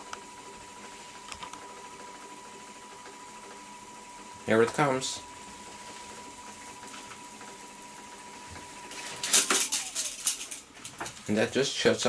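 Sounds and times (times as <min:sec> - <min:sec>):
tape recorder rewinding whine: 0:00.0 - 0:12.0
rapid clatter of clicks: 0:09.2 - 0:11.3.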